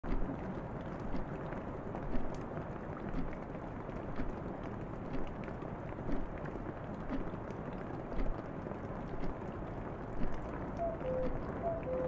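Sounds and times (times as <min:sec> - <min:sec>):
steady rain: 0:00.0 - 0:12.0.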